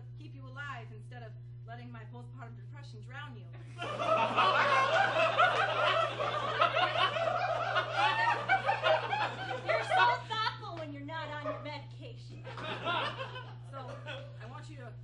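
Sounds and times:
audience laughing: 3.6 - 10.6, 12.3 - 14.4.

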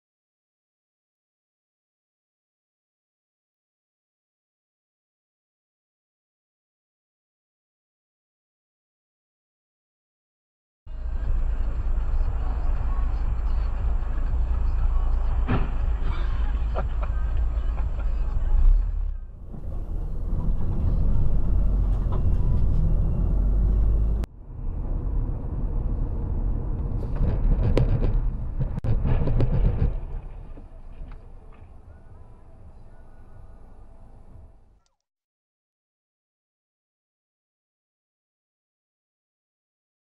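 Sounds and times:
engine and road noise: 10.9 - 34.8
sharp knocks: 27.2 - 30.3.

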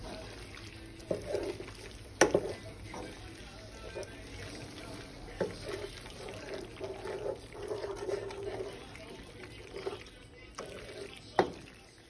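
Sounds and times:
wooden spoon scraping a pan: 0.0 - 11.7
spoon knocking against pan: 2.2 - 3.2.

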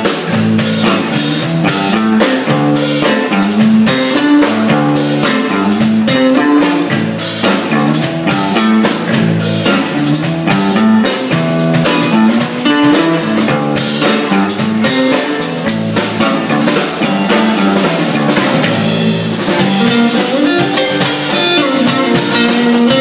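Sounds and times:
drum kit beat: 0.0 - 23.0
electric guitars: 0.0 - 23.0.

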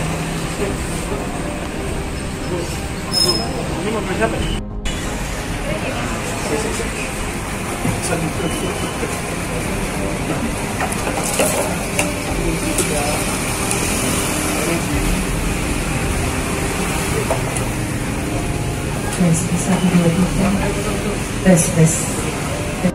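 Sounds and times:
crowd chatter: 0.0 - 22.9
low background rumble: 0.0 - 22.9.

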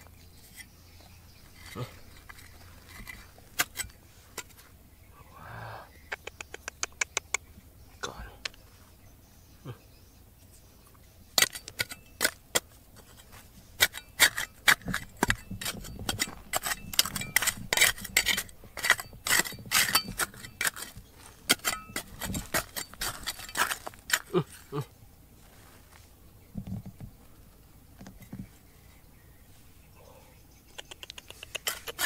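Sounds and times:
trowel scraping gravelly soil: 0.1 - 4.8, 11.4 - 26.1, 31.4 - 32.0
stones clinking on metal blade: 0.2 - 4.6, 11.4 - 24.8, 31.4 - 32.0.

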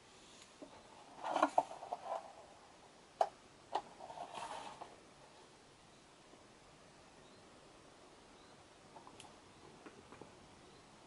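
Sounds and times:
rustling scrapes: 0.2 - 2.6, 3.8 - 5.0.

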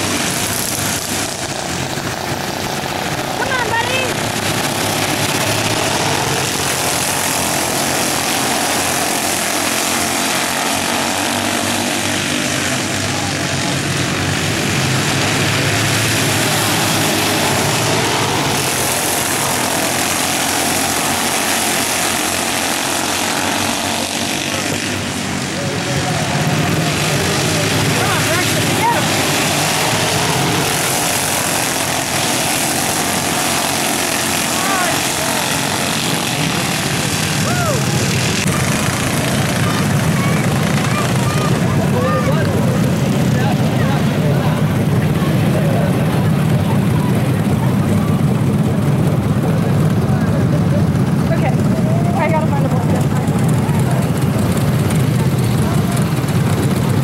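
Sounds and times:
small race car engines droning: 0.0 - 57.0.

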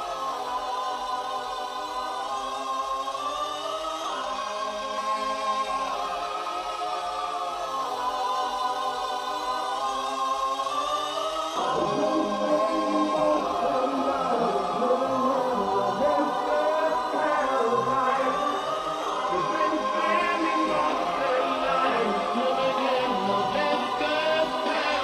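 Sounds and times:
choir-like vocal chords: 0.0 - 25.0
low synth chords: 11.4 - 25.0.

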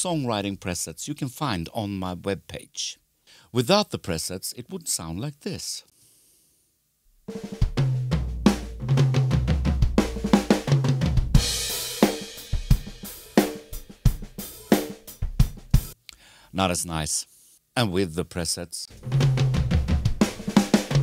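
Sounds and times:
drum kit playing: 7.3 - 16.0, 18.9 - 21.0
low notes: 18.9 - 21.0.

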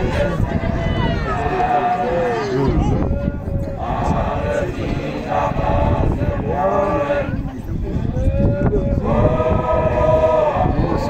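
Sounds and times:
group chanting long notes: 0.0 - 7.5, 8.2 - 11.0.

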